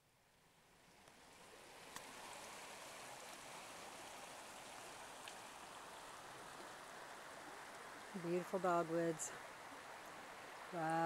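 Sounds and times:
creek water over rocks: 0:00.3 - 0:11.0.

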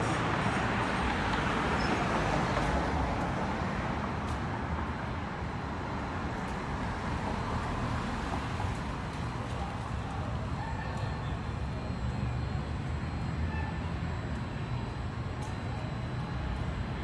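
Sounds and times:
cars passing on street: 0:00.0 - 0:17.0.

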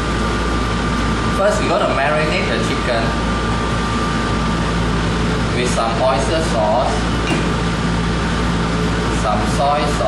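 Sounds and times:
thin steady whine: 0:00.0 - 0:10.0
ventilation fans humming: 0:00.0 - 0:10.0.

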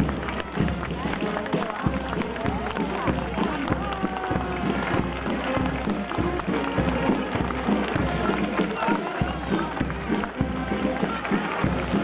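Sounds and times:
crowd chatter: 0:00.0 - 0:12.0
folk dance music: 0:00.0 - 0:12.0
shuffling steps on cobblestones: 0:00.0 - 0:12.0.

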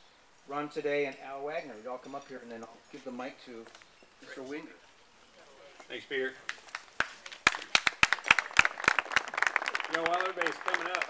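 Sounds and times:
audience clapping: 0:06.4 - 0:11.0.

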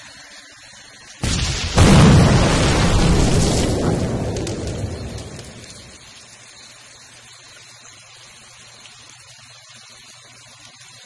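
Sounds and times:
rain falling: 0:00.0 - 0:11.0
thunder rumbling: 0:01.2 - 0:06.1.

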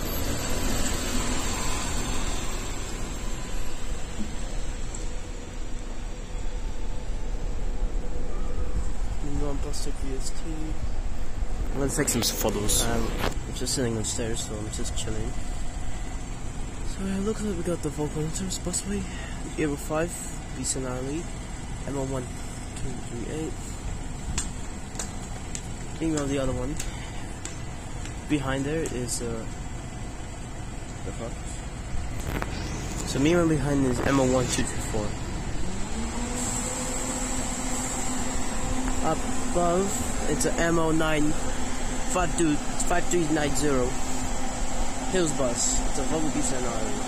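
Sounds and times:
bus driving past: 0:00.0 - 0:47.0
steady low rumble: 0:00.0 - 0:47.0.

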